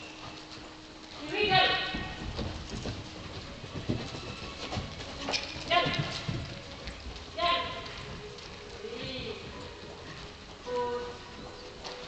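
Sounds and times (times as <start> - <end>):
horse hooves thudding: 0.0 - 12.0.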